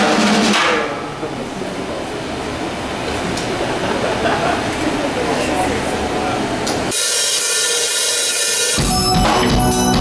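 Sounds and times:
faint crowd chatter: 0.0s - 6.9s.

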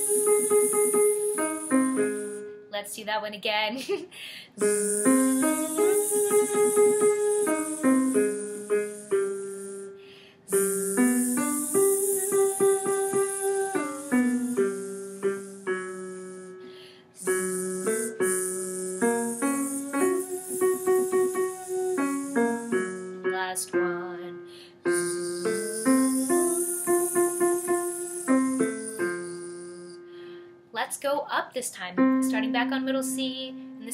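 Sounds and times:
piano arpeggio: 0.0s - 2.6s, 4.6s - 9.9s, 10.5s - 30.2s
voice buzzing sustained z: 0.0s - 2.6s, 4.6s - 30.4s.

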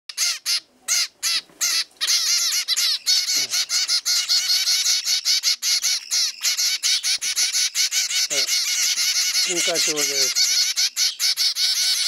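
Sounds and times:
finch chicks begging calls: 0.1s - 12.0s.

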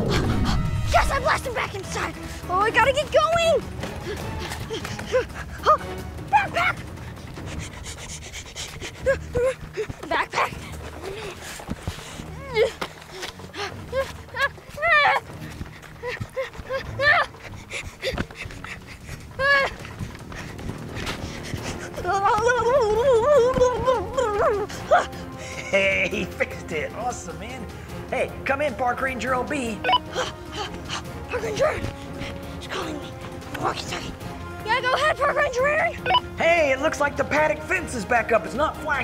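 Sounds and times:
boy panting and grunting: 0.0s - 25.8s, 29.8s - 36.2s
soft background music: 0.0s - 39.0s.

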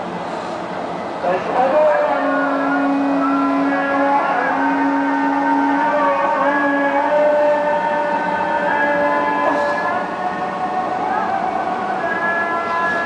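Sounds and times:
call to prayer over loudspeakers: 1.2s - 13.0s.

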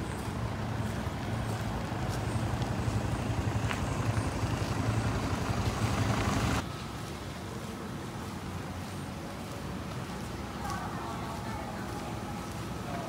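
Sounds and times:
van engine and tyres: 0.0s - 13.0s.

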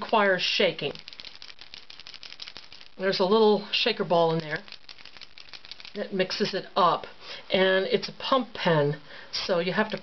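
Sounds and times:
paint marker ball rattling: 0.0s - 6.5s, 9.6s - 10.0s.

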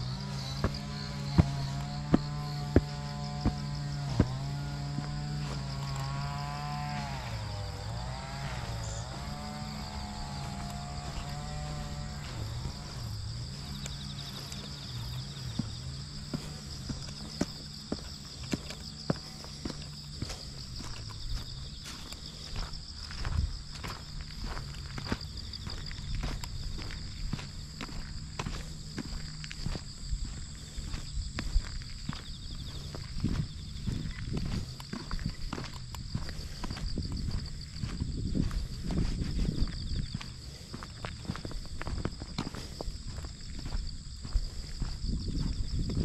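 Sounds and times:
footsteps on paved path: 0.0s - 46.0s
insects chirping: 0.0s - 46.0s.

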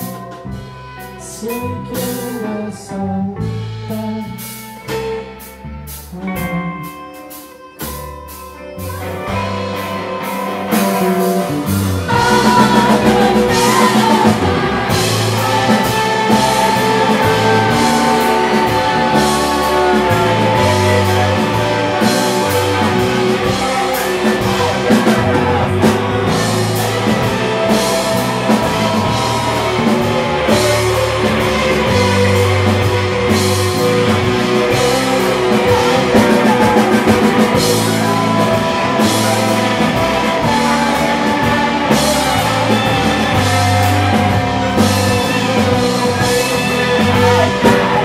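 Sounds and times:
drum kit: 0.0s - 48.0s
electric guitars: 0.0s - 48.0s
keyboards: 0.0s - 48.0s
live band playing instrumental: 0.0s - 48.0s.

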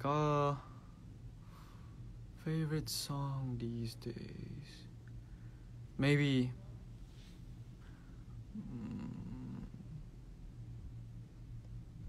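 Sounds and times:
man humming: 8.4s - 10.2s.

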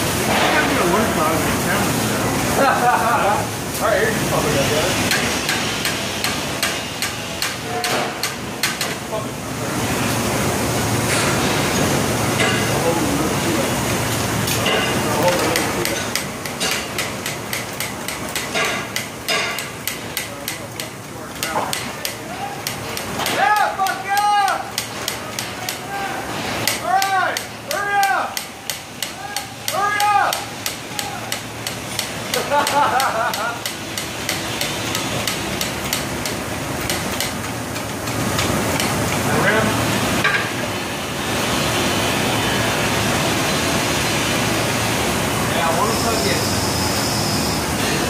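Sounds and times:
sharp metallic clicks and knocks: 26.6s - 39.0s.

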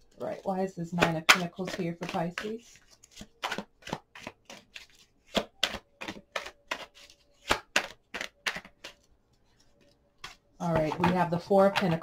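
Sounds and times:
cards being shuffled: 1.3s - 11.2s.

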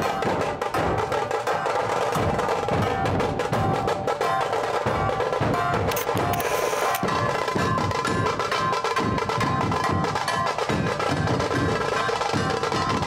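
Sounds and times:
barrel drums beaten: 0.0s - 13.0s
rapid tasha drum strokes: 0.0s - 13.0s.

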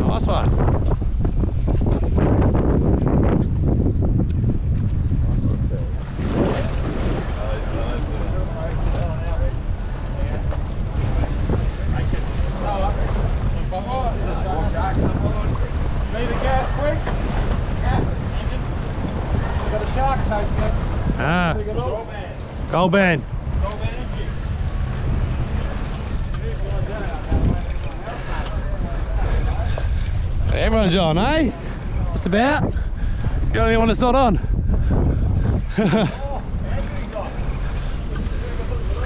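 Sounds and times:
water washing along hull: 0.0s - 39.0s
wind buffeting microphone: 0.0s - 39.0s
faint voices: 5.2s - 39.0s.

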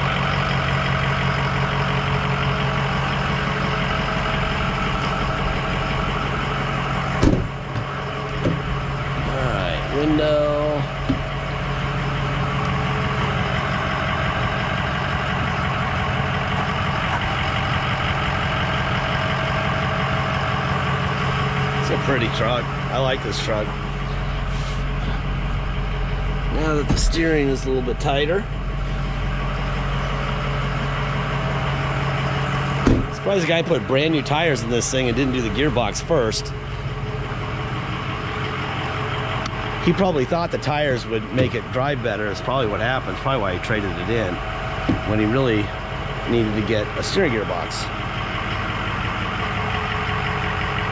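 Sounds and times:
diesel engine idling: 0.0s - 50.9s.

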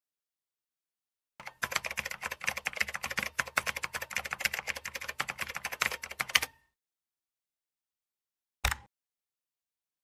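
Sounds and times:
computer keyboard typing: 1.4s - 6.6s.

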